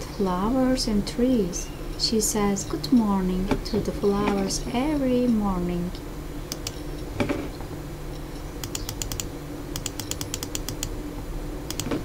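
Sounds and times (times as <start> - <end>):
faint low hum: 0.0 - 12.0
keyboard key clicks: 6.5 - 6.8, 8.6 - 10.9, 11.7 - 12.0.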